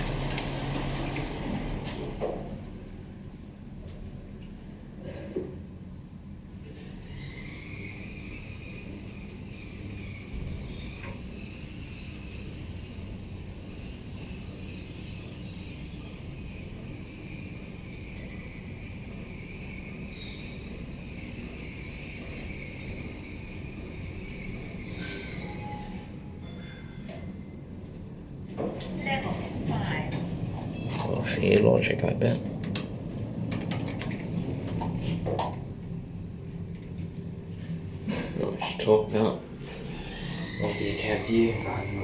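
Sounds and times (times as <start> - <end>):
elevator motor whine: 0.0 - 4.3
elevator travel rumble: 0.0 - 42.0.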